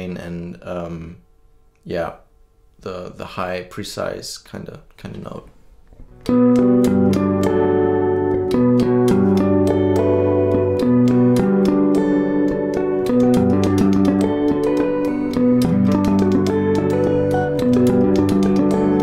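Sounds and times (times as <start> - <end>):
electric guitar tapped notes: 6.0 - 19.0.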